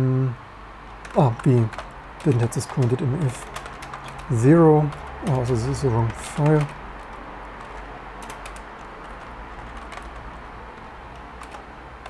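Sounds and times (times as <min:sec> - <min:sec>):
steady low hum: 0:00.0 - 0:12.0
computer keyboard typing: 0:00.9 - 0:12.0.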